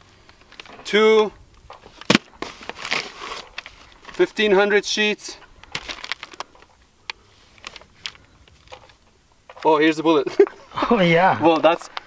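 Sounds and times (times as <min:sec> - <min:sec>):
paper rustling and crinkling: 0:01.7 - 0:04.3, 0:05.6 - 0:09.8.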